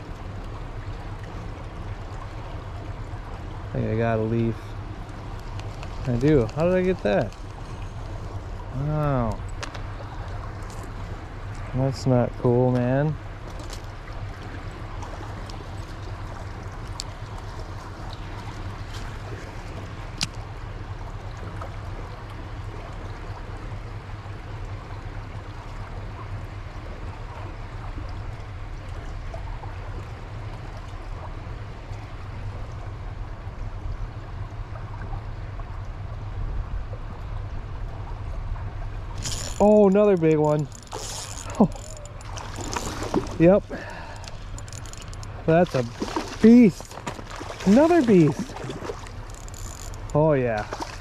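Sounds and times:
stream water rushing: 0:00.0 - 0:51.0.

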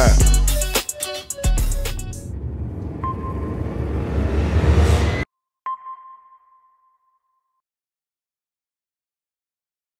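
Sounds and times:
low rushing whoosh: 0:01.6 - 0:05.3.

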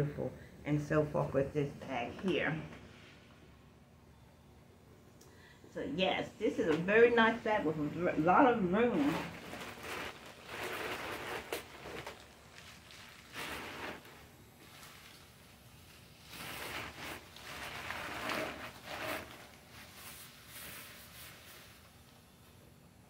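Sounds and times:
leather handbag rustling: 0:08.8 - 0:15.6, 0:16.2 - 0:21.0.

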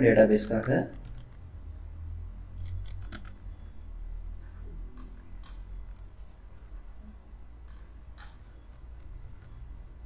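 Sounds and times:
computer keyboard typing: 0:00.4 - 0:01.4, 0:02.6 - 0:03.4, 0:04.9 - 0:06.7.

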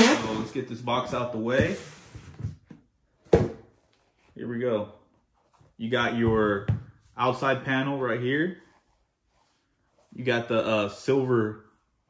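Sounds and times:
cardboard box thunk on wooden table: 0:03.3 - 0:03.6.

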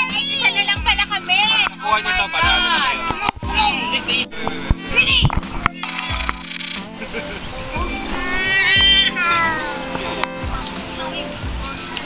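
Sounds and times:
background music with steady tones: 0:00.0 - 0:12.0
scattered voices: 0:00.0 - 0:12.0.

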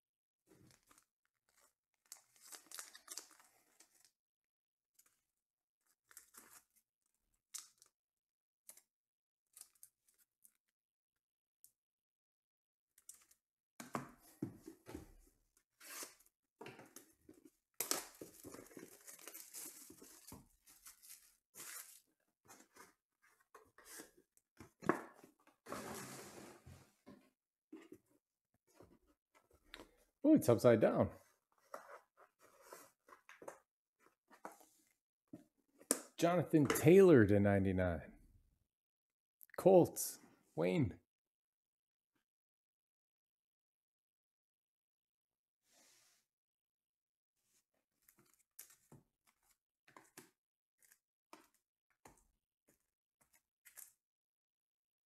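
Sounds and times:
plastic wrapper crinkling and tearing: 0:02.0 - 0:03.6, 0:17.8 - 0:22.0.

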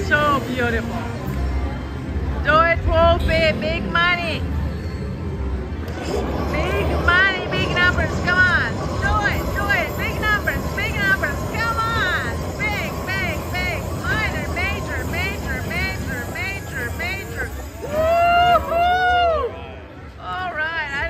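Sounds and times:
low casino rumble: 0:00.0 - 0:21.0
slot machine chiming tones: 0:06.2 - 0:18.4.

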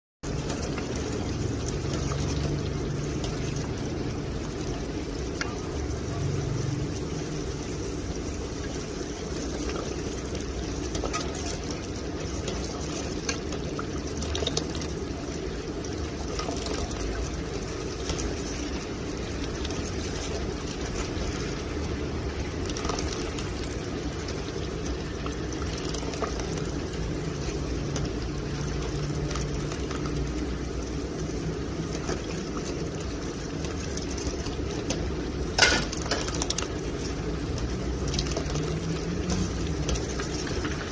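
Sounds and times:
thick liquid sloshing: 0:15.9 - 0:30.4, 0:31.8 - 0:40.9.

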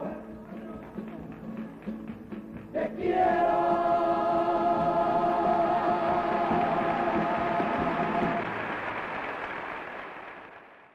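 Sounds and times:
choir singing a held chord: 0:02.8 - 0:08.5.

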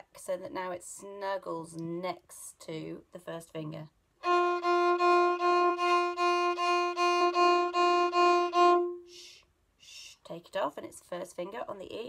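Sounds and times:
violin bowed notes: 0:04.2 - 0:09.3.

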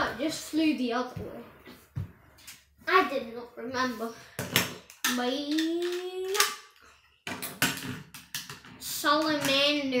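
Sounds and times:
child speaking: 0:00.0 - 0:01.6, 0:02.8 - 0:04.3, 0:05.0 - 0:06.8, 0:08.8 - 0:10.0.

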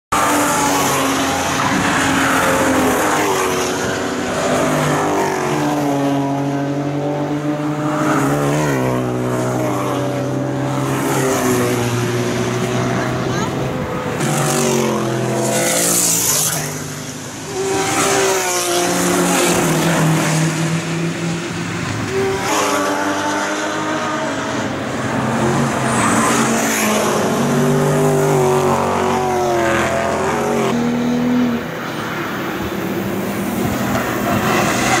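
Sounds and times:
race car engines passing: 0:00.1 - 0:35.0.

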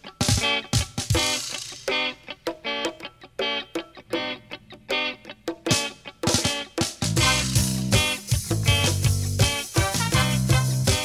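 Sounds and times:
electric guitar choppy chords: 0:00.0 - 0:11.0
drum fill: 0:00.2 - 0:02.6, 0:05.5 - 0:11.0.

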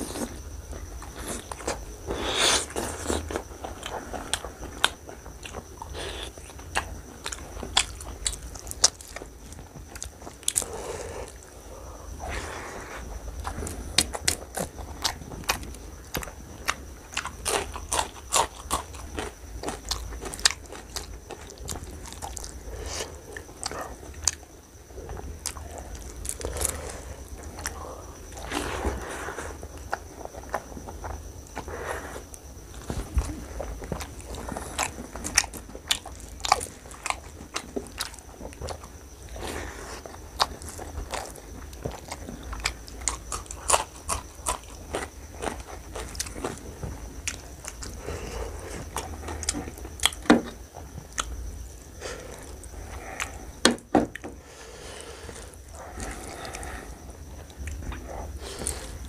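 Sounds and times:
wet chewing: 0:00.0 - 0:11.6, 0:12.2 - 0:54.2.

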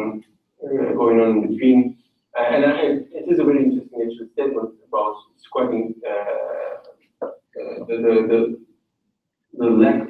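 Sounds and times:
person speaking over video call: 0:00.0 - 0:06.9, 0:07.6 - 0:08.5, 0:09.6 - 0:10.0.

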